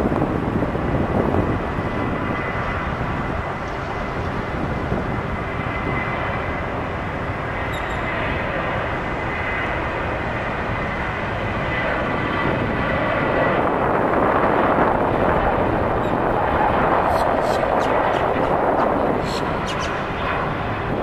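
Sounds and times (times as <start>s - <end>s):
jet engines roaring at takeoff: 0.0s - 21.0s.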